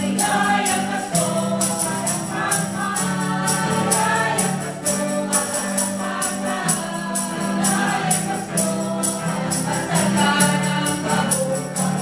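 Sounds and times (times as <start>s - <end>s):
acoustic guitar: 0.0s - 12.0s
mixed choir singing gospel: 0.0s - 12.0s.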